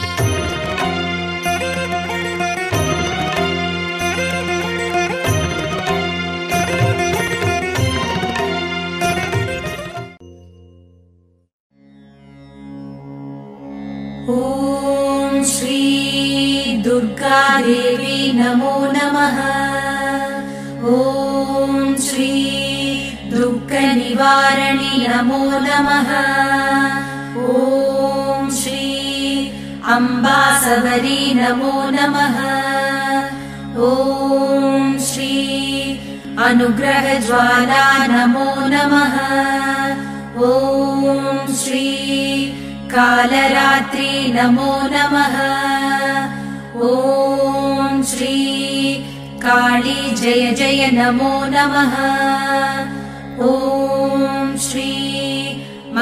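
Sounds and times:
person chanting: 14.3s - 56.0s.

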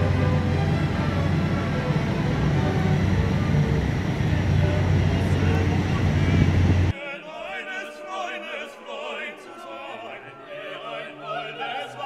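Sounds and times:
ferry engines droning: 0.0s - 7.0s
voices murmuring: 0.0s - 7.0s.

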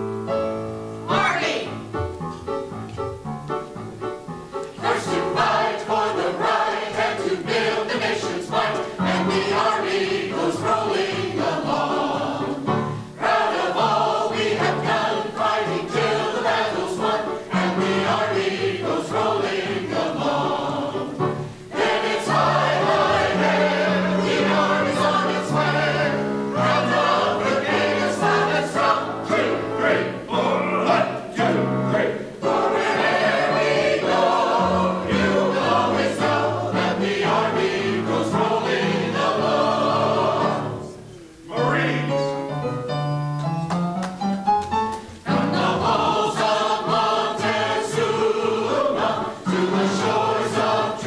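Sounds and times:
keyboard accompaniment: 0.0s - 51.0s
mixed choir singing: 4.8s - 42.4s, 45.2s - 51.0s.

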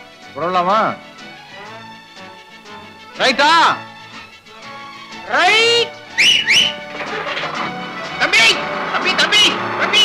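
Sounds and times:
man's drawn-out call: 5.5s - 6.8s
quick high whistles: 6.1s - 6.9s.

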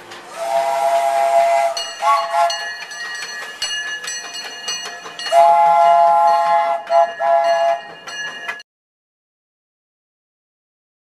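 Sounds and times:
steam locomotive whistle: 0.3s - 3.0s, 5.3s - 8.0s.

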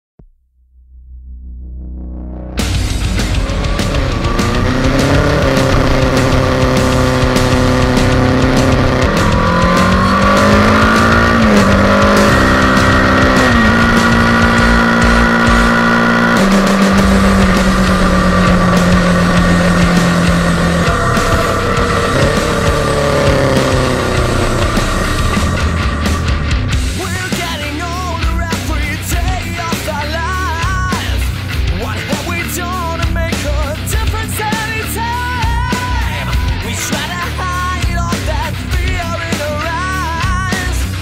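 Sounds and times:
music: 0.5s - 41.0s
motorcycle engine accelerating: 0.7s - 41.0s.

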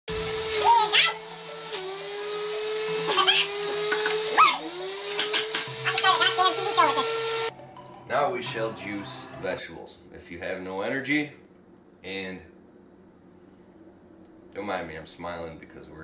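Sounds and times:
juicer motor whining: 0.1s - 7.5s.

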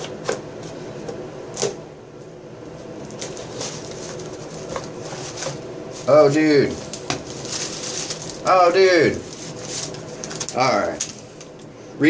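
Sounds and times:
tape and cardboard rustling: 3.0s - 11.6s.

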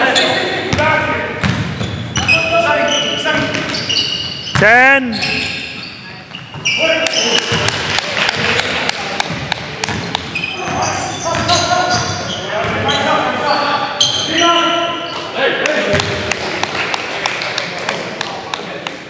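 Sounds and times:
sneakers squeaking: 0.0s - 16.2s.

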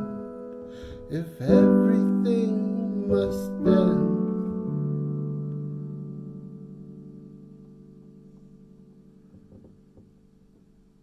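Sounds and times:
faint knocks: 9.3s - 10.8s.

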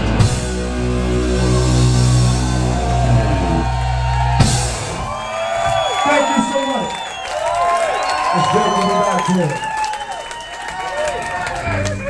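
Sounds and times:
rock band sustained chord: 0.0s - 5.1s
crowd cheering and whooping: 0.7s - 12.0s.

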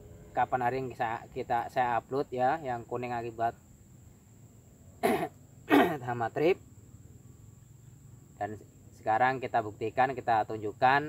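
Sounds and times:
man coughing: 5.0s - 6.1s.

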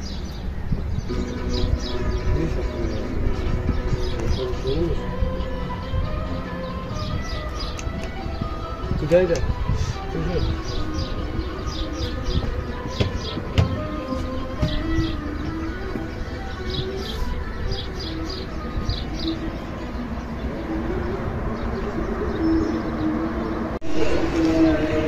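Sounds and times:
small birds chirping: 0.0s - 23.8s
soft background music: 0.0s - 25.0s.

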